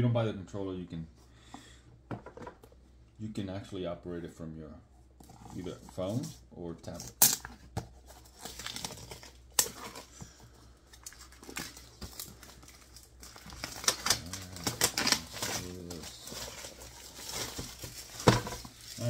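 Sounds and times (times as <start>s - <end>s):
plastic shrink wrap crinkling: 10.9s - 19.0s.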